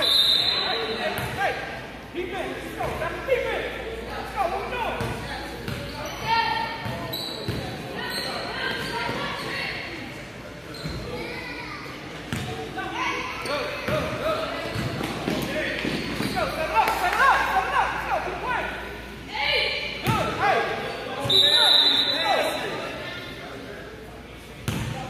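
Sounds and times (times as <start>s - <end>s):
people shouting in echoing gym: 6.0s - 10.0s, 12.5s - 23.2s
basketball bouncing on gym floor: 24.6s - 25.0s.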